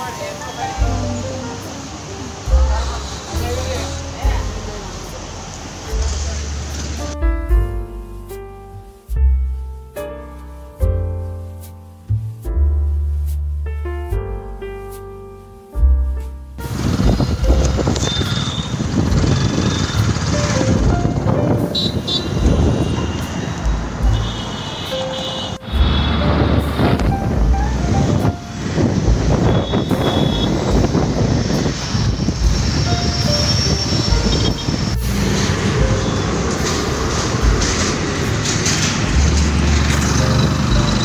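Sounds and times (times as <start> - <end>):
road traffic rumble: 0.0 - 41.0.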